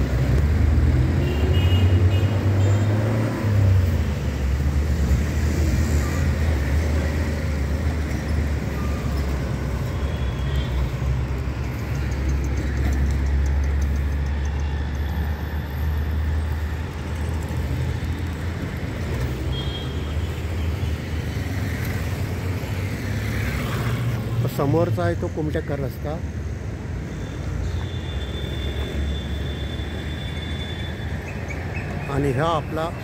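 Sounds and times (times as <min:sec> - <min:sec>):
vehicle engine and road noise: 0:00.0 - 0:33.0.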